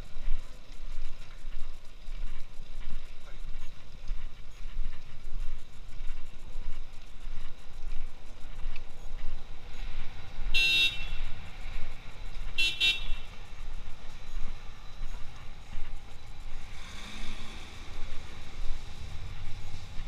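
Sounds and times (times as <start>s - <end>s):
low street rumble: 0.0s - 20.0s
vehicle horn toots: 10.5s - 11.4s, 12.6s - 13.3s.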